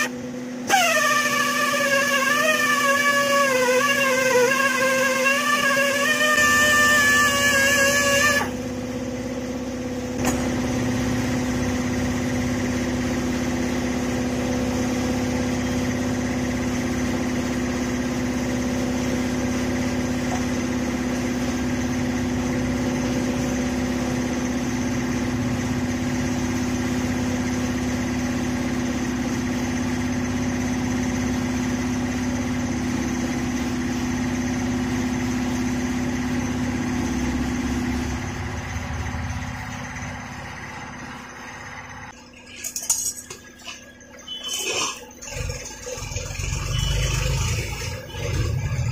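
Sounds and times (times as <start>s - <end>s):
workshop machine humming: 0.0s - 48.9s.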